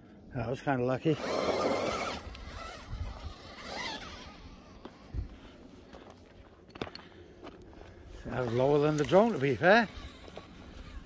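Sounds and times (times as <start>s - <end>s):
scraping over stony ground: 1.2s - 11.0s.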